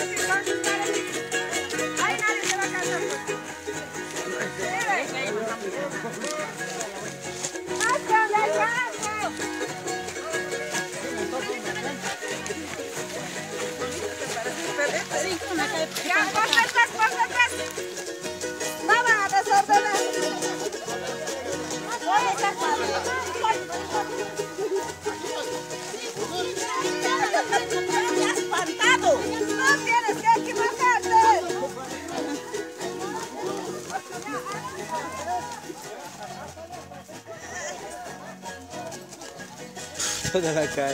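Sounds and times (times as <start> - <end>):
people chattering: 0.0 - 40.9
strummed guitar: 0.0 - 40.9
people singing: 18.0 - 36.0.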